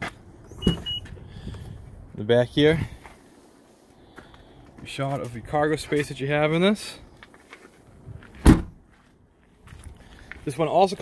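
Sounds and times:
short high beeps: 0:00.6 - 0:01.1.

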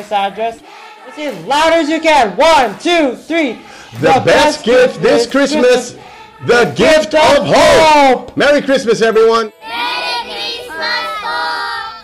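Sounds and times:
children singing in unison: 0:03.3 - 0:06.9, 0:09.6 - 0:12.0.

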